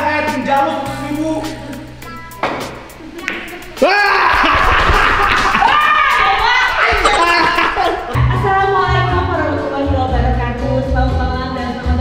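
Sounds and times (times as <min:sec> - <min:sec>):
background music: 0:00.0 - 0:12.0
pool cue striking ball: 0:02.4 - 0:03.6
person exclaiming loudly: 0:03.8 - 0:04.6.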